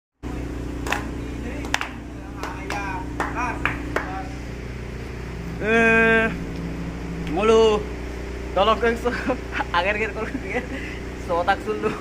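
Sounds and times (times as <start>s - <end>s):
steady low hum: 0.2s - 12.0s
people clapping hands: 0.8s - 4.2s.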